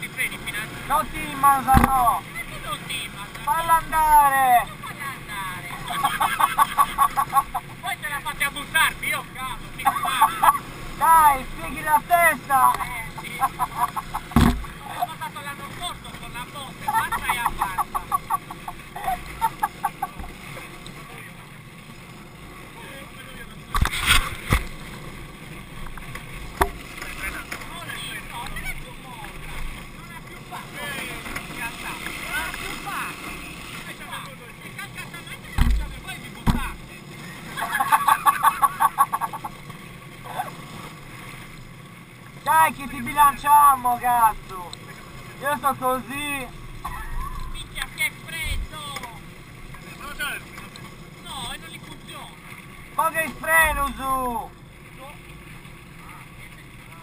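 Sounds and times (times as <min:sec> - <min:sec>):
wheels rushing on asphalt: 0:00.0 - 0:57.0
people laughing: 0:04.6 - 0:08.1, 0:09.8 - 0:10.7, 0:12.4 - 0:15.3, 0:16.8 - 0:20.6, 0:37.5 - 0:39.6
low thumps: 0:13.9 - 0:14.9, 0:35.6 - 0:36.8.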